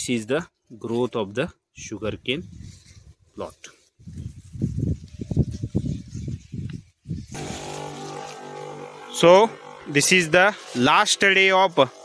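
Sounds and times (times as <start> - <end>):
wind buffeting microphone: 4.0 - 7.4
sprayer pump motor hum: 7.3 - 12.0.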